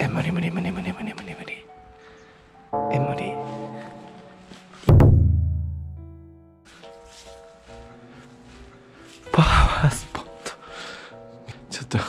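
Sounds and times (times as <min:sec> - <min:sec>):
musical chord: 0:02.7 - 0:06.6
deep ringing hit: 0:04.9 - 0:06.4.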